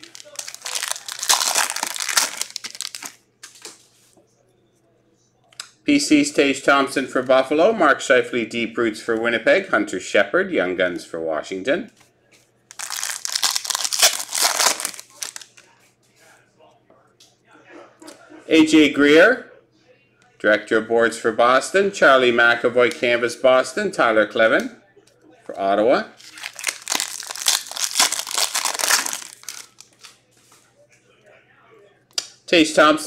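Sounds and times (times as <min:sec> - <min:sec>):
foil wrapper crinkling: 0:00.0 - 0:03.7, 0:12.7 - 0:15.6, 0:26.2 - 0:30.1.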